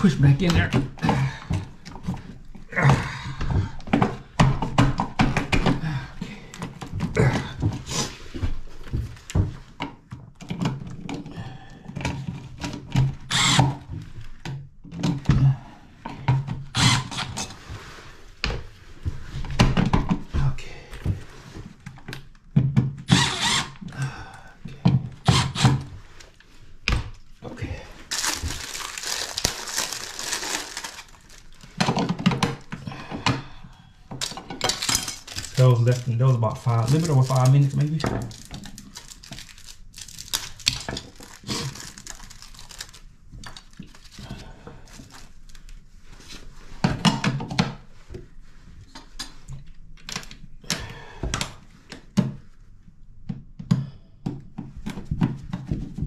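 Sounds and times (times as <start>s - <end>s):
cordless drill driving screws: 13.3s - 13.8s, 16.8s - 17.4s, 23.1s - 23.8s, 25.2s - 25.8s
outlets clicking into metal boxes: 34.2s - 43.0s.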